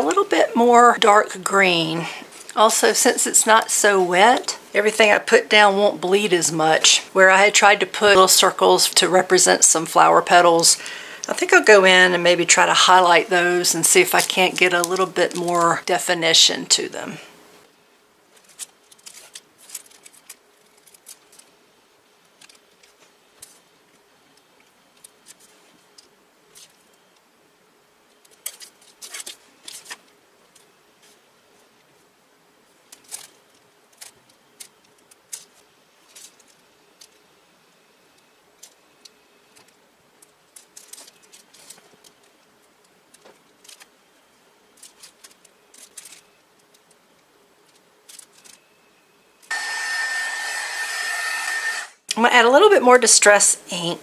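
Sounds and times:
electric drying tool whining: 49.5 - 52.0.

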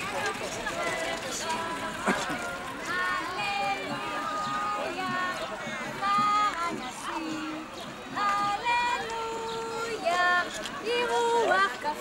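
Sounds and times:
crowd of adults and children talking: 0.0 - 12.0.

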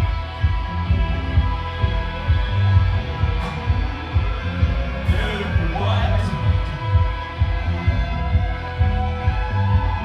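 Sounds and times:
kick drum and bass pulse: 0.0 - 10.0.

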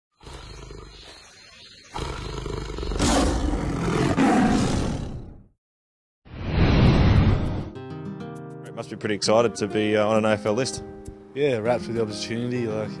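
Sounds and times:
tiger growling and roaring: 0.2 - 5.5.

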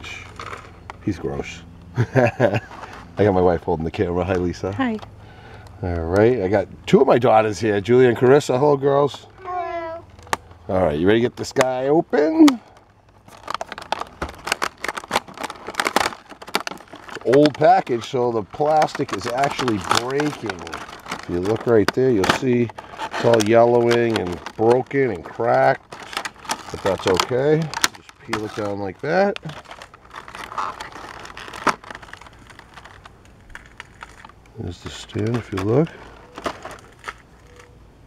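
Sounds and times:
plastic crackling and snapping: 0.0 - 1.0, 10.0 - 37.8
plastic snapping: 12.4 - 18.0, 25.9 - 34.5.

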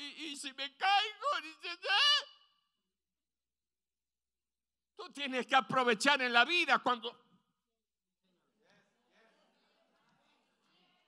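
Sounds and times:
man's amplified voice: 0.0 - 2.4, 5.0 - 7.3.

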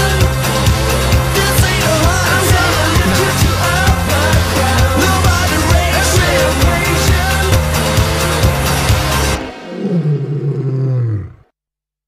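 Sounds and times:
lion roaring: 1.7 - 7.9, 9.2 - 11.5.

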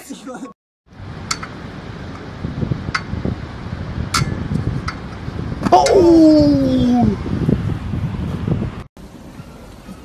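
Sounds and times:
low wind rumble: 0.9 - 9.8.

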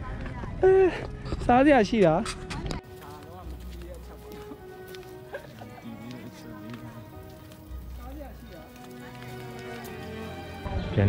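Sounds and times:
background music: 1.1 - 11.0.

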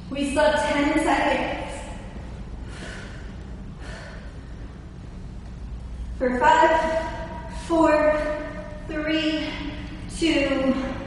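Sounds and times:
woman breathing hard: 2.4 - 5.2, 5.8 - 11.0.

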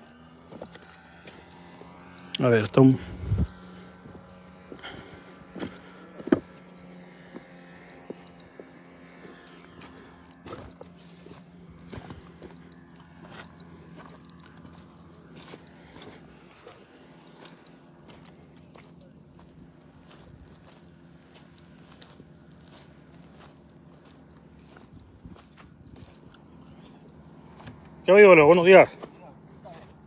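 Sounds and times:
faint low hum: 0.0 - 30.0
footsteps on loose stones: 4.0 - 27.9.

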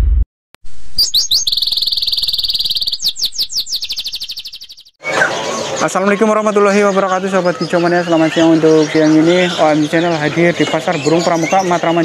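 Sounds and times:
songbird trilling: 1.0 - 12.0.

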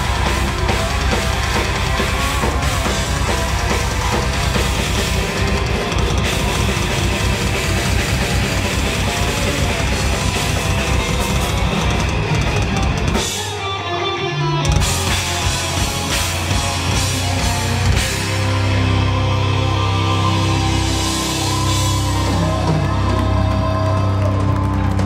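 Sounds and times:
bass guitar: 0.0 - 25.0
distorted electric guitars: 0.0 - 25.0
drum kit: 0.0 - 25.0.

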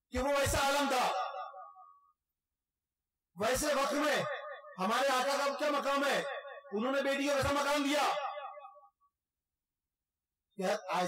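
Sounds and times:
man speaking through microphone: 0.1 - 1.5, 3.4 - 8.6, 10.6 - 11.0.

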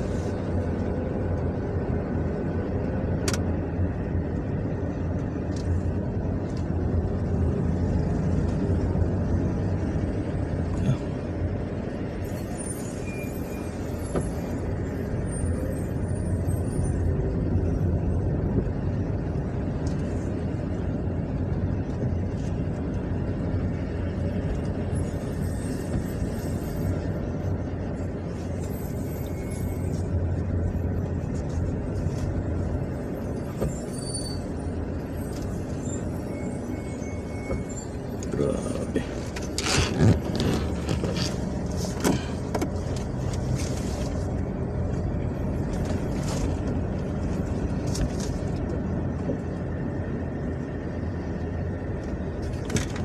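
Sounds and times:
car engine rumble: 0.0 - 53.0
road noise inside car: 0.0 - 53.0.

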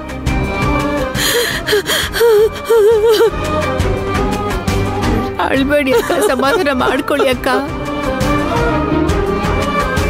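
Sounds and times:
sharp gasp or sob: 1.2 - 3.3.

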